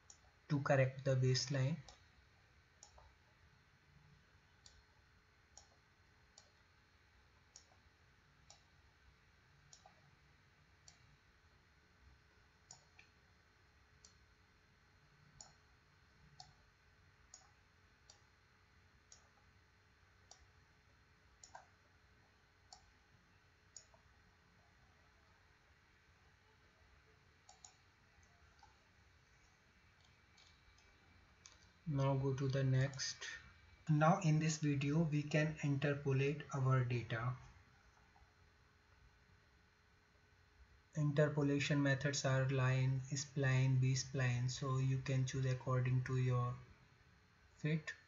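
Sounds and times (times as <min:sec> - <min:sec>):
computer mouse clicks: 0:00.0 - 0:00.4, 0:02.8 - 0:03.2, 0:04.6 - 0:04.9, 0:05.5 - 0:06.7, 0:07.5 - 0:08.8, 0:09.6 - 0:10.2, 0:10.8 - 0:11.1, 0:12.6 - 0:13.2, 0:14.0 - 0:14.3, 0:15.3 - 0:16.7, 0:17.3 - 0:18.3, 0:19.1 - 0:19.5, 0:20.2 - 0:20.6, 0:21.4 - 0:21.8, 0:22.6 - 0:23.0, 0:23.7 - 0:24.1, 0:27.4 - 0:28.9, 0:29.9 - 0:31.8
low steady background hum: 0:00.0 - 0:48.0.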